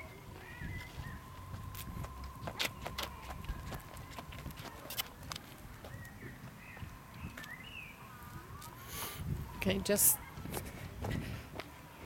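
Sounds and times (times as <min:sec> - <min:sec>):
wind rumble on microphone: 0:05.6 - 0:11.6.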